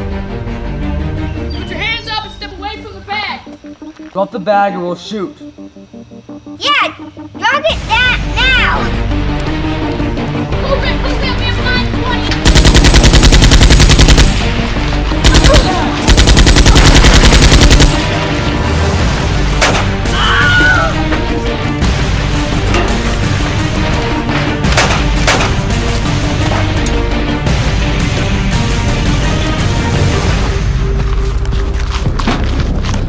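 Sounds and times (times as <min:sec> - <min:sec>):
background music: 0:00.0 - 0:33.0
automatic gunfire bursts: 0:12.4 - 0:14.5, 0:15.2 - 0:18.2.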